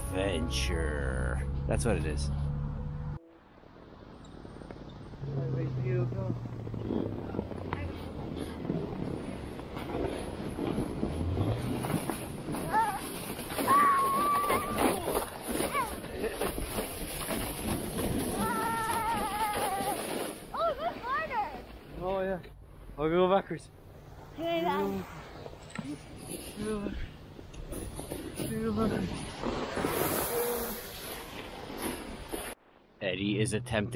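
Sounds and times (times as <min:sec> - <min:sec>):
wind rushing on microphone: 0:03.8 - 0:12.8
riders whooping and yelling: 0:12.7 - 0:15.2, 0:18.2 - 0:21.1
plastic saucer sliding on snow: 0:28.9 - 0:32.6.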